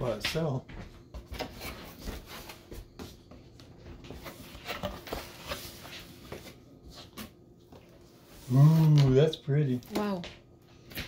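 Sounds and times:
cardboard scraping and rustling: 0:04.0 - 0:07.3.

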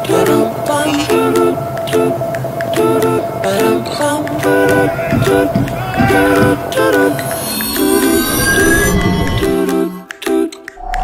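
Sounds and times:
high sustained ringing tones: 0:00.0 - 0:10.0.

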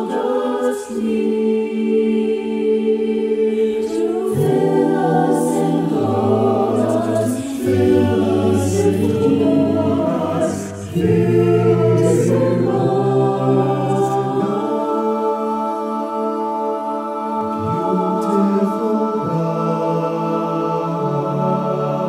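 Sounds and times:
choir singing held chords: 0:00.0 - 0:22.0
low bass voices: 0:05.7 - 0:14.6.

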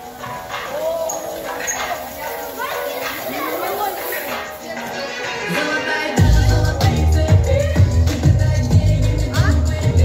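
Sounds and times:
children talking and calling out: 0:00.0 - 0:07.8.

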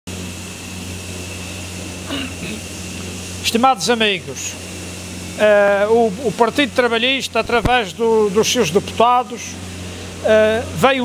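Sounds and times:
mechanical hum with low drone: 0:00.1 - 0:11.0
thin high whine: 0:00.1 - 0:11.0.

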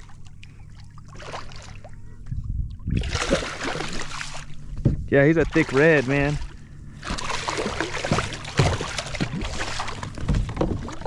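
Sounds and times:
fish splashing in water: 0:00.0 - 0:02.0, 0:02.9 - 0:04.6, 0:05.4 - 0:11.0.

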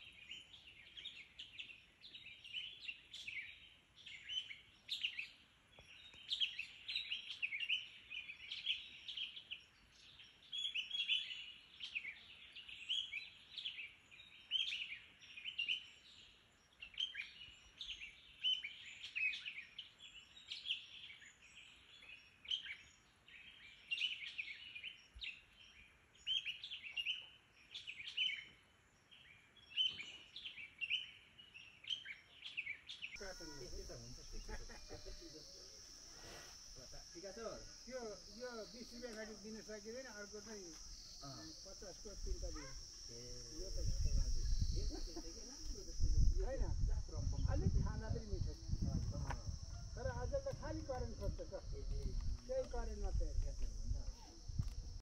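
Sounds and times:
songbirds chirping: 0:00.0 - 0:55.0.

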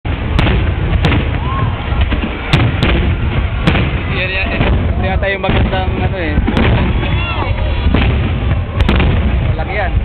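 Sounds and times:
rumble of firework explosions: 0:00.0 - 0:10.0
sharp firework cracks: 0:00.1 - 0:10.0.

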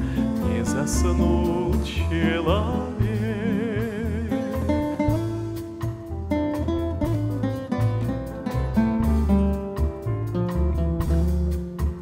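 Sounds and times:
acoustic guitar plucked notes: 0:00.0 - 0:12.0
double bass low notes: 0:00.0 - 0:12.0.

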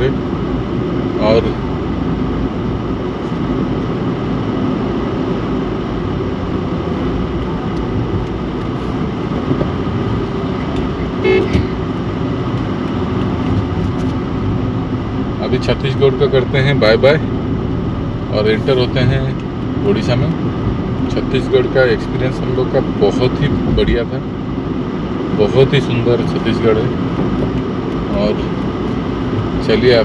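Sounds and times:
car engine and road noise: 0:00.0 - 0:30.0
car horn toot: 0:11.0 - 0:11.8.

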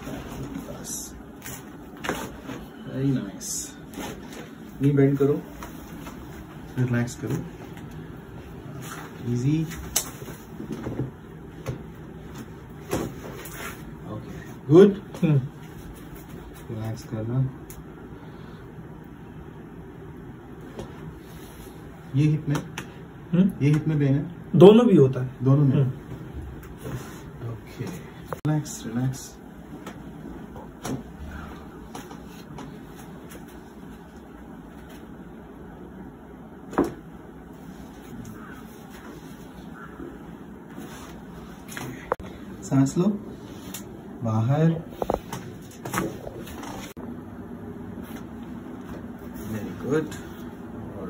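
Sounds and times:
rustling clothing and padding: 0:00.0 - 0:02.8, 0:03.8 - 0:14.0, 0:45.0 - 0:47.0
room hum: 0:00.0 - 0:51.0.

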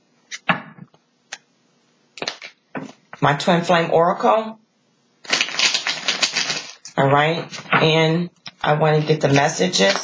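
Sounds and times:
cards being shuffled: 0:05.3 - 0:06.9, 0:09.0 - 0:10.0.

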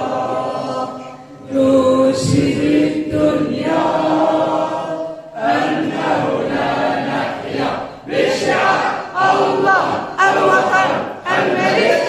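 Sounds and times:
group chanting long notes: 0:00.0 - 0:12.0.

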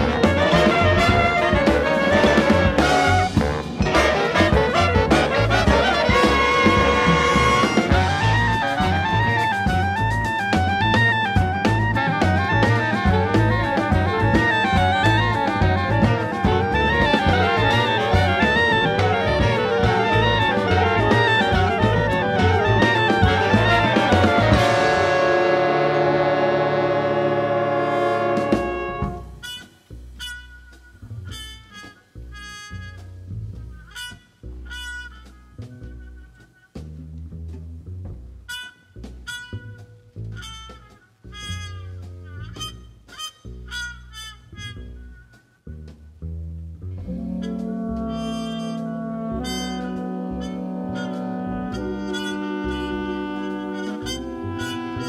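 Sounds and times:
brass and reeds chords: 0:00.0 - 0:36.9, 0:38.4 - 0:45.6, 0:46.9 - 0:55.0
bass line: 0:00.0 - 0:55.0
jazz big band playing: 0:00.0 - 0:55.0.

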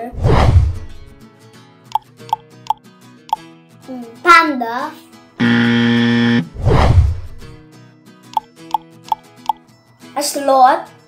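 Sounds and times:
light background music: 0:00.0 - 0:05.4, 0:07.5 - 0:11.0
whoosh: 0:00.1 - 0:01.1, 0:06.5 - 0:07.6
flat loud buzzer: 0:05.4 - 0:07.4.

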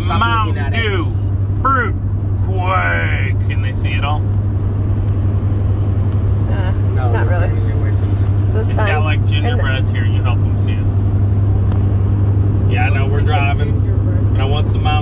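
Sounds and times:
car cabin road noise: 0:00.0 - 0:15.0
person speaking: 0:08.6 - 0:09.9.

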